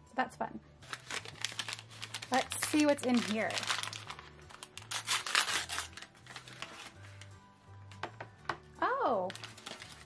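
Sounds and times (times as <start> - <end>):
soft background music: 0.0 - 10.0
packaging crinkling: 0.8 - 7.3, 9.2 - 10.0.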